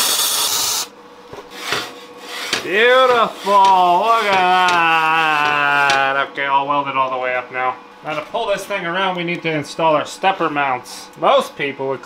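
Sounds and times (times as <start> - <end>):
arc welder crackling: 0.0 - 6.3.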